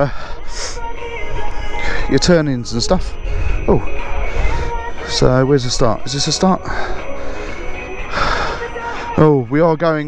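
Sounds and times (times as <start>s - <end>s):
wind buffeting microphone: 0.0s - 8.8s
breathy rush of noise: 0.0s - 9.2s.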